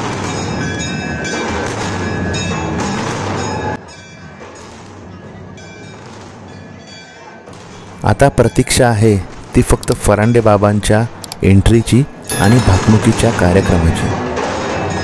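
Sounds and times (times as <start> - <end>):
ringing bell-like tones: 12.2 - 13.9.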